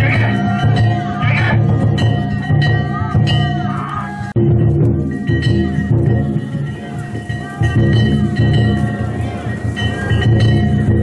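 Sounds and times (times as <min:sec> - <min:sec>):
voices calling: 0:00.0 - 0:04.4, 0:05.0 - 0:11.0
drums and gongs rhythm: 0:00.0 - 0:11.0
sustained ringing tone: 0:00.0 - 0:11.0.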